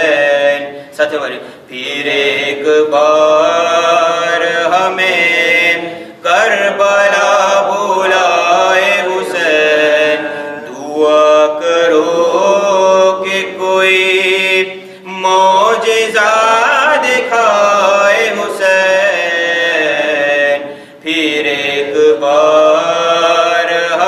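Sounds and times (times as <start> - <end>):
man chanting: 0.0 - 24.0.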